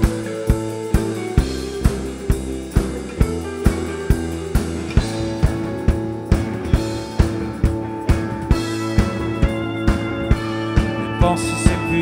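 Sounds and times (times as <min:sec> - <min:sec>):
rock music: 0:00.0 - 0:12.0
steady drum beat: 0:00.0 - 0:12.0.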